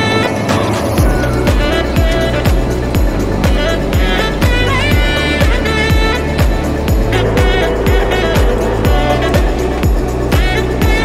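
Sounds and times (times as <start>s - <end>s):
sustained synth chords: 0.0s - 11.0s
upbeat electronic music: 0.0s - 11.0s
deep kick drum: 1.0s - 11.0s.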